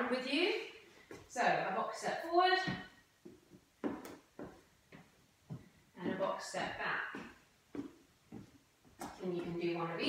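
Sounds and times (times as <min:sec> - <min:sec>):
footsteps on wooden floor: 0:02.6 - 0:09.7.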